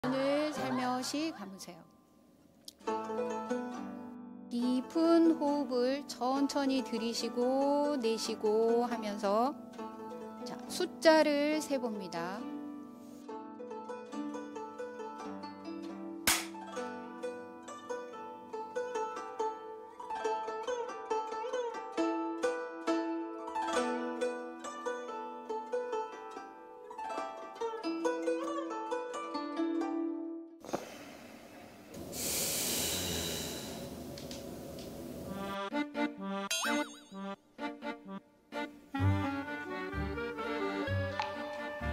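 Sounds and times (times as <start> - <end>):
plucked-string background music: 2.7 - 30.6, 35.4 - 41.9
long snore: 32.2 - 34.0.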